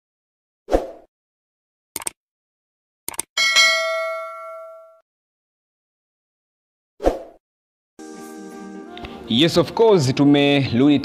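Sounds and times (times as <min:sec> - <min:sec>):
notification bell ding: 0:03.4 - 0:05.0.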